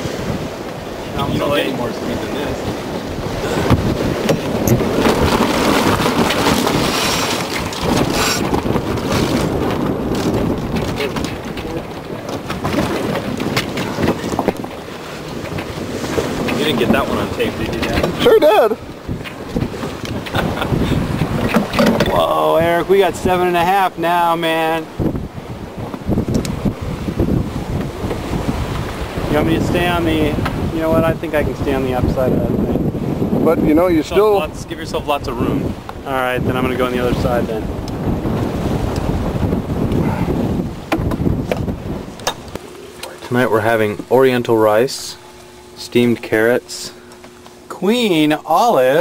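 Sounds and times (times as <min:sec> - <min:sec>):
water rushing along hull: 0:00.0 - 0:49.0
wind buffeting microphone: 0:00.0 - 0:49.0
knocks from deck and rigging: 0:03.6 - 0:18.2, 0:21.1 - 0:22.2, 0:40.8 - 0:42.6.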